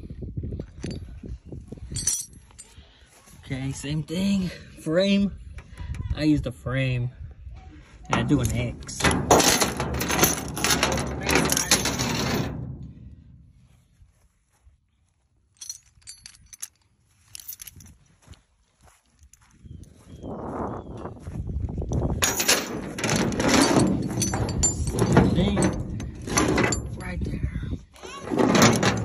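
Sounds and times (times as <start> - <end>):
metallic clinks of chain and hooks: 1.8 - 2.8, 8.2 - 12.5, 15.5 - 18.2, 22.2 - 27.2.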